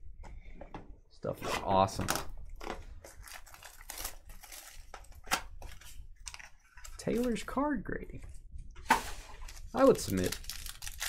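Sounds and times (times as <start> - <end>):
plastic shrink wrap crackling: 2.6 - 7.5, 9.3 - 11.0.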